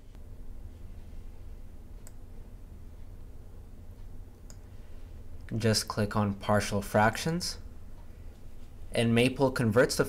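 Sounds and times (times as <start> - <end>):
steady low hum: 0.0 - 10.0
computer mouse clicks: 4.3 - 4.7.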